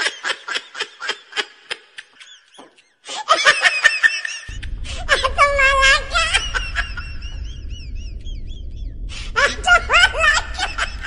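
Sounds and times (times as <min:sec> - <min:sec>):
woman laughing: 0:00.0 - 0:08.6, 0:09.2 - 0:11.0.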